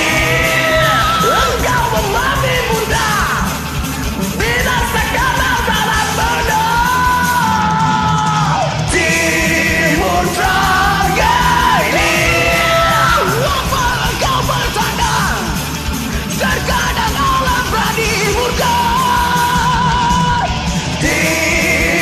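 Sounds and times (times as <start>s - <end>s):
metal backing track: 0.0s - 22.0s
two men singing karaoke: 0.0s - 22.0s.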